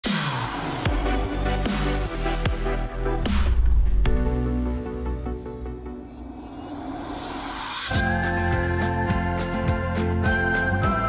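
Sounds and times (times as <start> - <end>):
rising whoosh sweep: 5.8 - 9.1.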